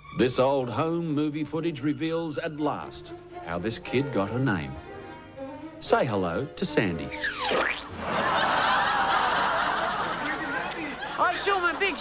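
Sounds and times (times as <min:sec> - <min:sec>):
studio audience laughing: 0:07.9 - 0:12.0.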